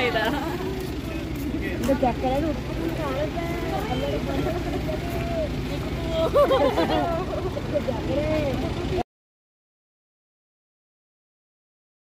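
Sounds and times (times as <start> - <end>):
women talking: 0.0 - 0.9, 1.8 - 9.0
steady low rumble: 0.0 - 9.0.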